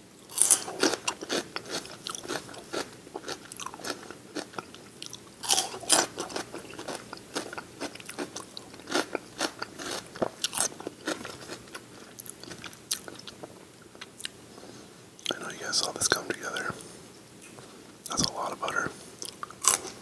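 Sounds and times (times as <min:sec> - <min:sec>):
chewing crunchy celery: 0:00.3 - 0:14.4, 0:18.1 - 0:20.0.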